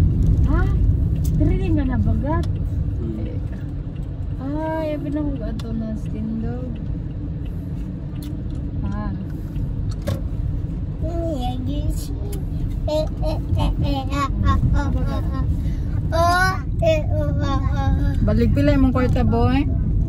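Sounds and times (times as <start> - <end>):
car rumble from inside cabin: 0.0 - 20.0
child's voice: 11.0 - 18.2.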